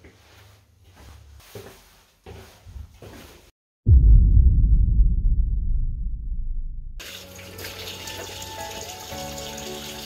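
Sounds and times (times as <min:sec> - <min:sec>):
low rumble: 0:03.9 - 0:07.0
tap water running into sink: 0:07.0 - 0:10.0.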